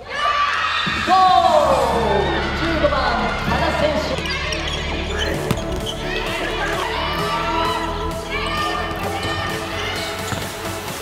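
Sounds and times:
players shouting: 0:00.0 - 0:10.5
background music: 0:00.6 - 0:11.0
ball bouncing on hard floor: 0:05.5 - 0:05.9, 0:10.3 - 0:10.6.

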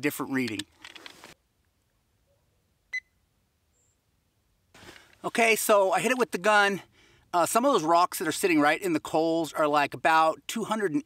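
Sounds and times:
short electronic beep: 0:02.9 - 0:03.2.

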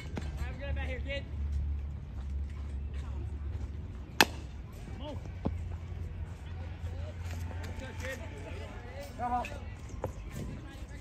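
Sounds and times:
bat cracking a baseball: 0:04.2 - 0:04.5.

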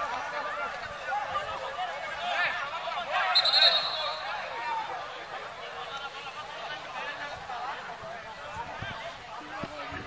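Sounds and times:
spectators chattering: 0:00.0 - 0:10.0
trilled whistle blast: 0:03.3 - 0:04.2.

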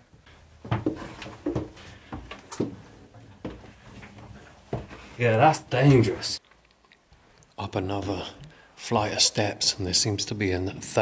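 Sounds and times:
footsteps on wooden stairs: 0:00.0 - 0:06.1.

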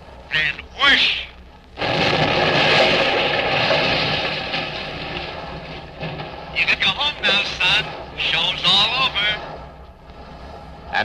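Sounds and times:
cannon blast rushing noise: 0:01.8 - 0:09.8.

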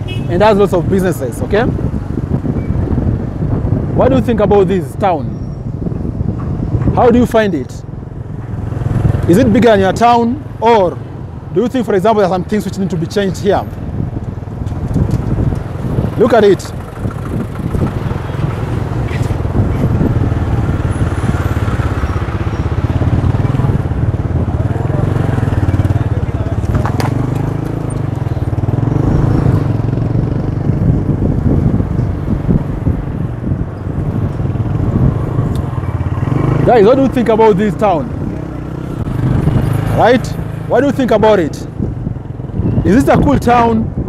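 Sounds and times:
traffic noise: 0:00.0 - 0:44.0
vehicle engines running: 0:00.0 - 0:44.0
wind buffeting microphone: 0:00.0 - 0:44.0.

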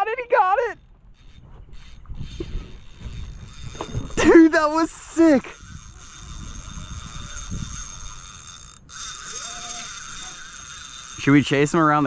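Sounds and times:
fishing reel working: 0:00.5 - 0:12.0.

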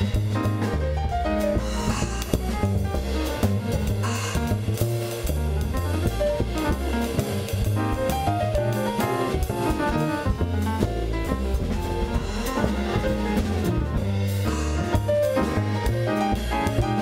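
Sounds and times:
grand piano: 0:00.0 - 0:17.0
upright acoustic bass: 0:00.0 - 0:17.0.

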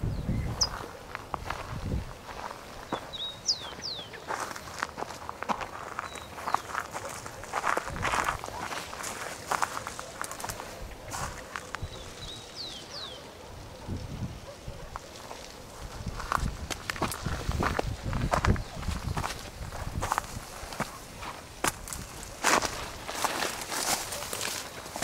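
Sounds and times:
footsteps through dry scrub: 0:00.5 - 0:13.1, 0:14.9 - 0:25.0
brush and twigs crackling: 0:00.7 - 0:25.0.

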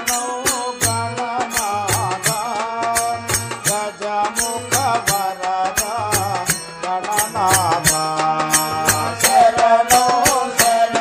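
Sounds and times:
devotional song melody: 0:00.0 - 0:11.0
sharp percussion strokes: 0:00.0 - 0:11.0.

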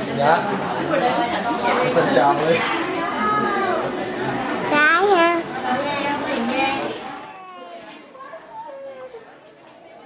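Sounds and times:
chatter of people and children: 0:00.0 - 0:10.0.

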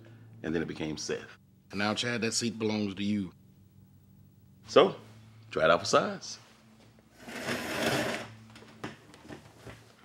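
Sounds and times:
chair scraping on floor: 0:07.1 - 0:08.4.

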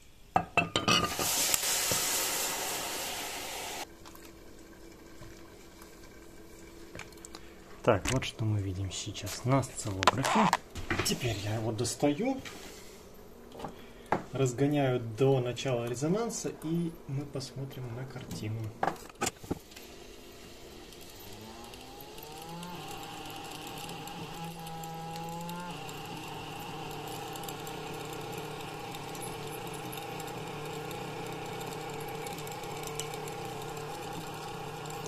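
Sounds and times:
stepper motor whining: 0:20.2 - 0:35.0.

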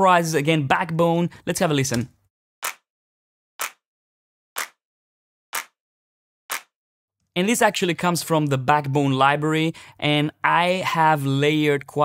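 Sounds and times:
electronic clap sample: 0:02.6 - 0:02.9, 0:03.6 - 0:03.8, 0:04.6 - 0:04.8, 0:05.6 - 0:05.8, 0:06.5 - 0:06.8.

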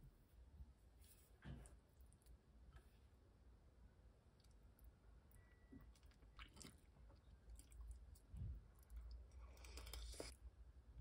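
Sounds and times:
scrape: 0:01.0 - 0:01.7
faint chewing: 0:04.3 - 0:10.4.

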